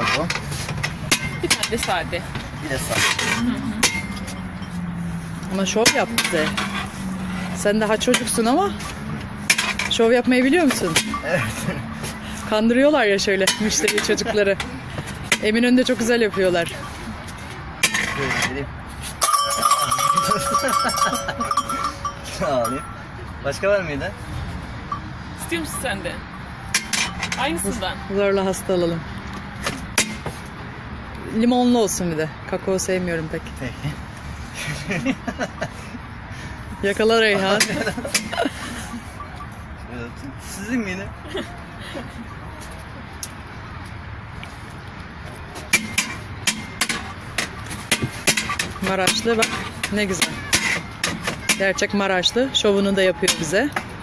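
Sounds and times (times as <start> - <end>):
metal paddle clanking on metal tubs: 0.0 - 4.7, 5.5 - 12.3, 13.2 - 15.6, 17.8 - 18.6, 19.2 - 23.0, 26.6 - 27.6, 45.6 - 52.1
people laughing: 11.2 - 12.0, 19.6 - 22.4, 34.6 - 36.0, 37.3 - 39.2, 41.0 - 42.4
metal bell ringing: 19.2 - 23.2.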